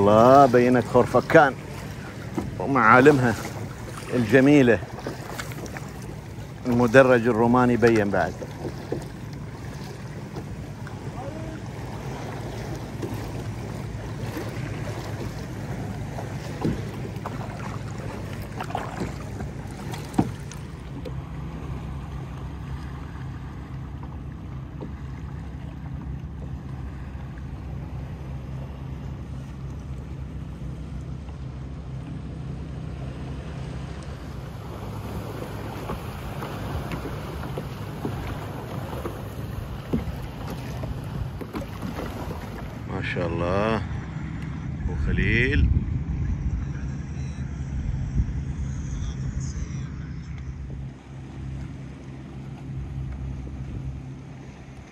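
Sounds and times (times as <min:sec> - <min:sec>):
water lapping around kayak: 0:00.0 - 0:54.9
wind on microphone: 0:44.7 - 0:51.3.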